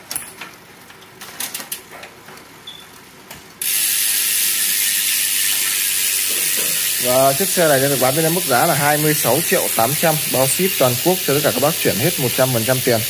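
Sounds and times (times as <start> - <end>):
bicycle drivetrain clicking: 3.6 - 13.0
loud steady hiss: 3.7 - 13.0.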